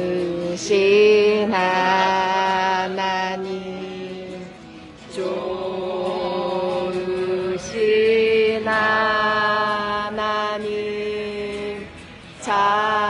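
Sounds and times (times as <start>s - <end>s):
voices singing a hymn: 0.0s - 13.0s.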